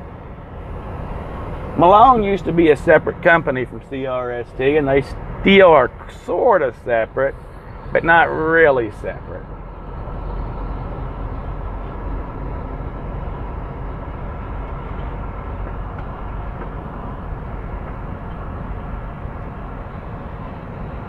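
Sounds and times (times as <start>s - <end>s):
truck diesel engine rumble: 0.0s - 21.0s
tyres rolling on unpaved ground: 7.9s - 20.9s.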